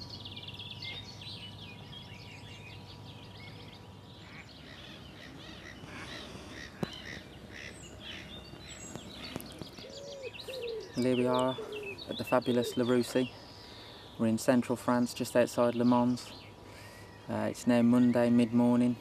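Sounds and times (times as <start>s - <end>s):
birds chirping and singing: 0.0s - 19.0s.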